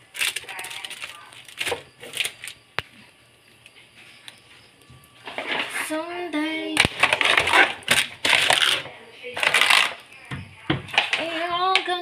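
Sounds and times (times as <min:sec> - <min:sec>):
plastic pouches and bottles crinkling: 0:00.0 - 0:03.1, 0:06.7 - 0:12.0.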